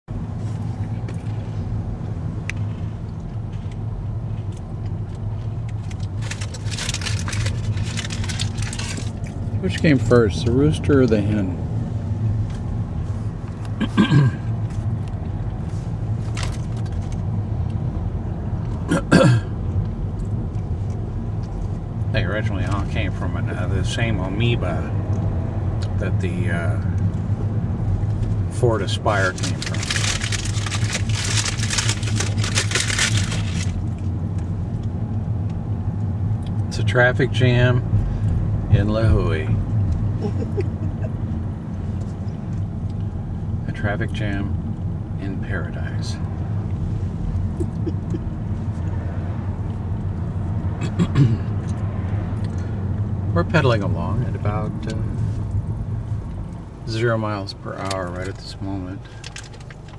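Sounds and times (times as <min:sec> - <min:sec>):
car cabin road and engine noise: 0:00.1 - 0:59.9.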